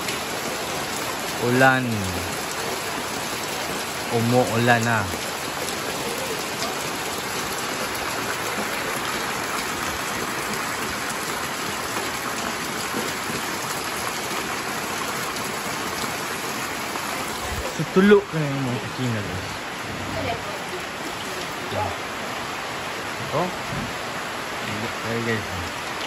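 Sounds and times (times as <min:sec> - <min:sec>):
heavy rain on a tin roof: 0:00.0 - 0:26.0.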